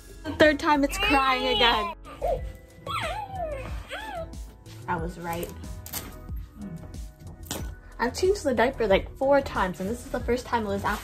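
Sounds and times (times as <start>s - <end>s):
background music: 0.0s - 11.0s
baby simulator cooing: 1.1s - 4.4s.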